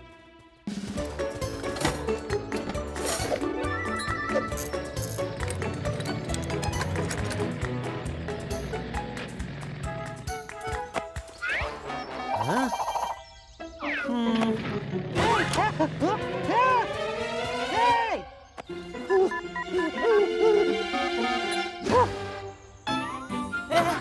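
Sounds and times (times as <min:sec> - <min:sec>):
lively cartoon music: 0:00.0 - 0:24.0.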